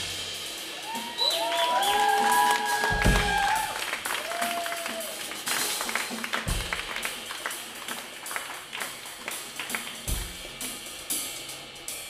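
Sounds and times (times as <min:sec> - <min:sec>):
cymbal and hi-hat taps: 0:00.0 - 0:12.0
jazz band playing softly: 0:00.0 - 0:12.0
bass drum hit: 0:02.9 - 0:03.8, 0:06.5 - 0:07.1.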